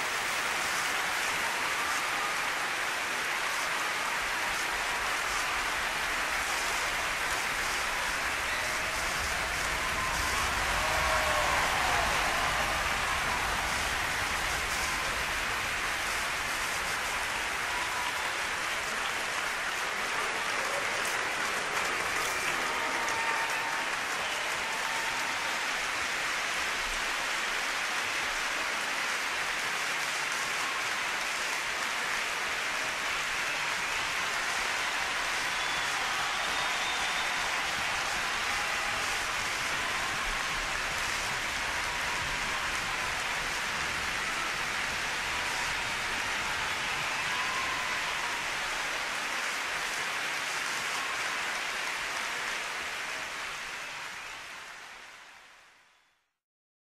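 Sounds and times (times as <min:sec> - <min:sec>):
audience applauding: 0:00.0 - 0:56.2.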